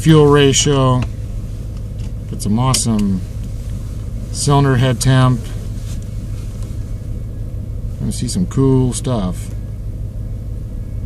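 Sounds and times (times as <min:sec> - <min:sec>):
car engine rumbling from cabin: 0:00.0 - 0:11.0.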